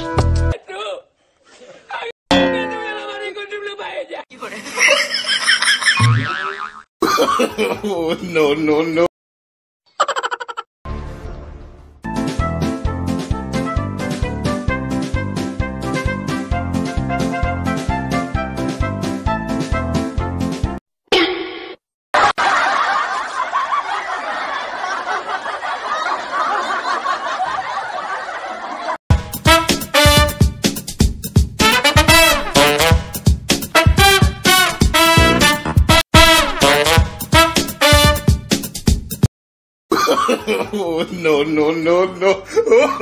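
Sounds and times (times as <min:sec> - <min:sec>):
person speaking: 0:00.6 - 0:04.8
wavering cartoon laugh effect: 0:04.4 - 0:07.9, 0:09.9 - 0:10.7, 0:42.2 - 0:43.0
people laughing: 0:04.4 - 0:08.3, 0:22.2 - 0:29.0, 0:39.9 - 0:43.0.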